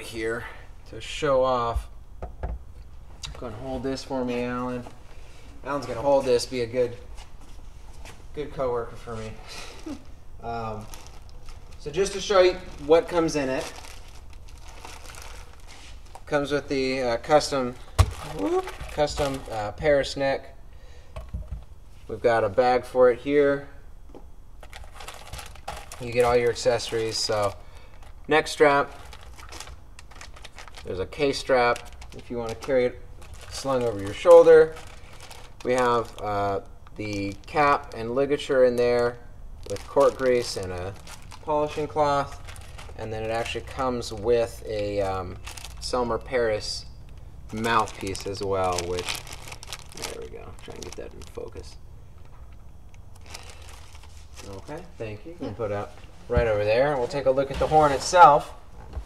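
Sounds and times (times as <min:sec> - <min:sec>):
low room hum: 0:00.0 - 0:59.0
bags crinkling and rustling: 0:08.3 - 0:20.1, 0:24.6 - 0:51.8, 0:52.6 - 0:54.8, 0:55.8 - 0:59.0.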